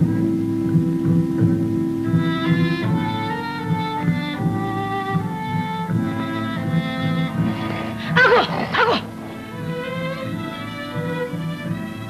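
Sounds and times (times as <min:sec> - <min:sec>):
orchestral music with strings: 0:00.0 - 0:12.0
short wavering cries: 0:06.3 - 0:10.9.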